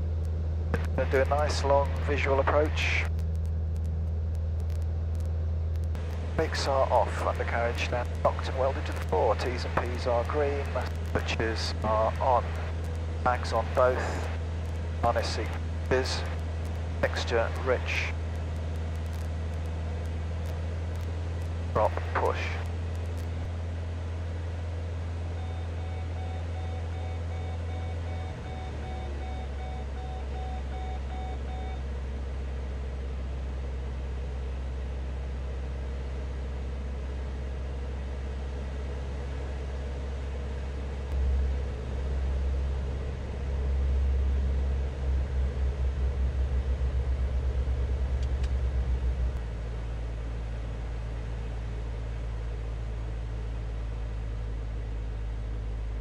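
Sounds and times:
light aircraft engine droning: 0.0s - 56.0s
faint beep: 25.4s - 31.8s.

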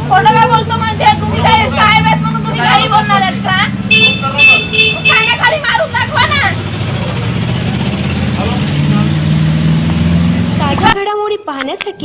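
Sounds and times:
vehicle engine running: 4.9s - 11.0s.

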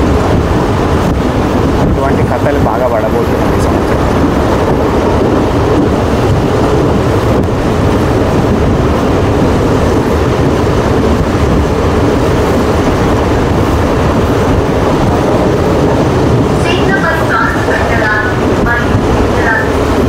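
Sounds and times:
train wheel and track noise: 0.0s - 20.0s
person speaking: 2.0s - 4.3s.

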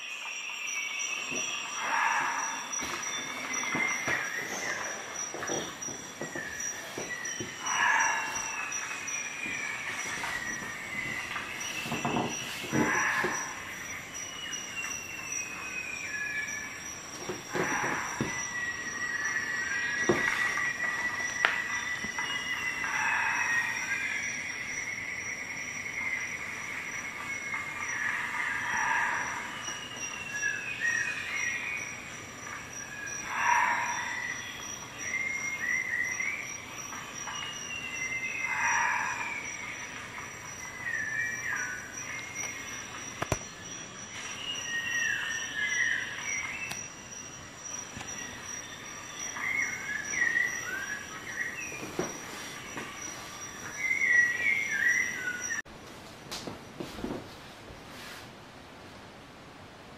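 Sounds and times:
birds chirping and twittering: 0.0s - 55.6s.

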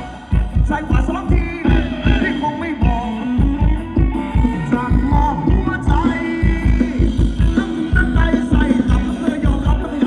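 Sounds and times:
live dance band playing: 0.0s - 10.0s
steady kick drum beat: 0.0s - 10.0s.

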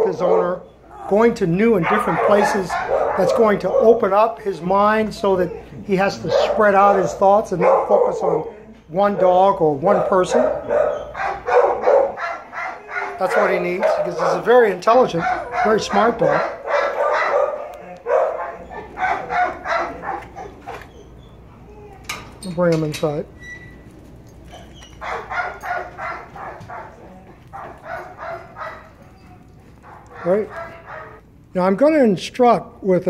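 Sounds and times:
dog barking: 0.0s - 0.7s, 1.7s - 4.3s, 5.5s - 20.8s, 24.5s - 31.2s.

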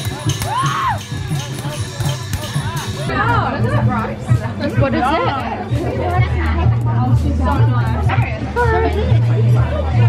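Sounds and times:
crowd chatter: 0.0s - 10.0s
music with regular beats: 0.0s - 10.0s
people talking: 1.2s - 10.0s.

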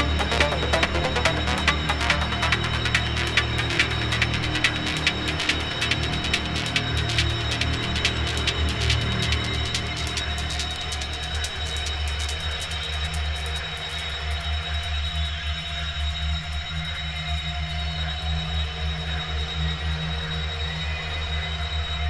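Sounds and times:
heavy sustained bass: 0.0s - 10.6s
fast crisp ticking percussion: 0.0s - 13.2s.

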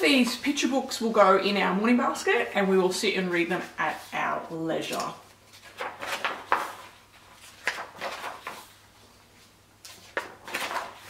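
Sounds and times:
book pages turning: 4.8s - 11.0s.

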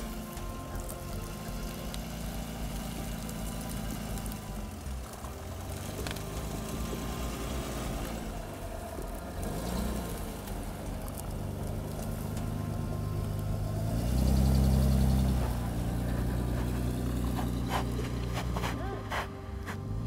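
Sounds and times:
engine idling: 0.0s - 20.0s
music: 0.0s - 20.0s.

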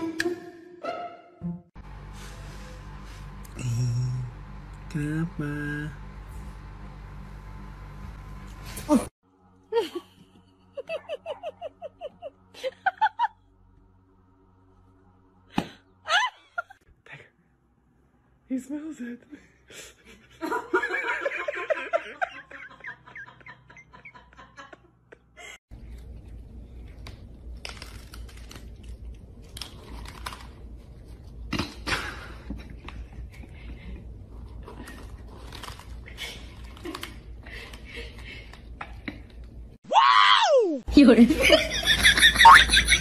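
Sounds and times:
person giggling: 9.7s - 13.4s
cat crunching dry kibble: 27.2s - 30.9s, 34.9s - 37.1s.

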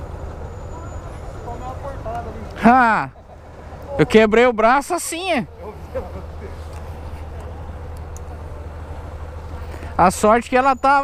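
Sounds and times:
light street traffic: 0.0s - 11.0s.

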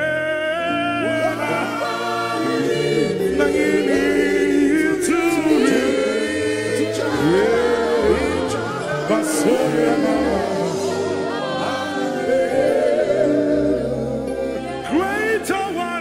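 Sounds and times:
held keyboard chords: 0.0s - 16.0s
voices singing together: 0.0s - 16.0s.

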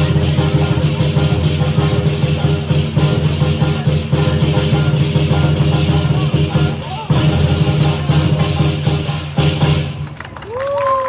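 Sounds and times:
fast drum beat: 0.0s - 10.0s.

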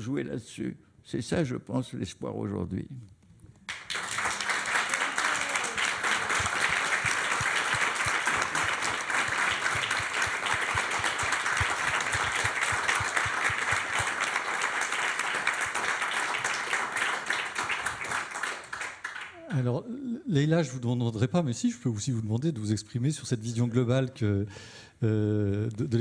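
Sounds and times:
audience applauding: 3.7s - 19.4s.

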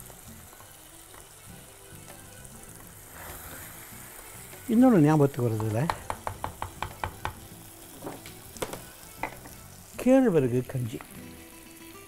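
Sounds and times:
steady frying sizzle: 0.0s - 12.0s
wooden spatula knocking on clay pot: 5.5s - 7.4s.

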